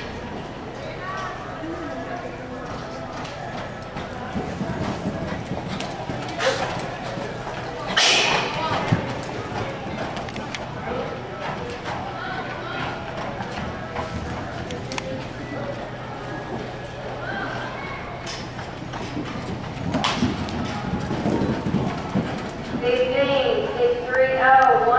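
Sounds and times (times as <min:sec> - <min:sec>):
horse hoofbeats on dirt: 0:01.2 - 0:24.9.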